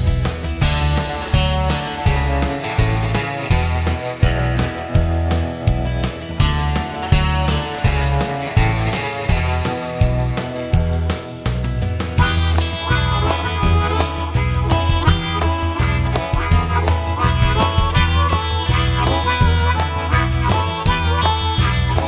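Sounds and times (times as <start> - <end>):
bass: 0.0 - 22.0
steady beat: 0.0 - 22.0
harmonica solo with bent notes: 0.6 - 11.4, 12.2 - 22.0.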